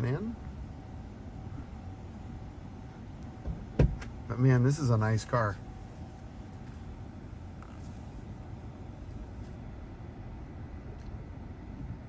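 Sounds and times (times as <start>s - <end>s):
car cabin rumble and hum: 0.0s - 12.0s.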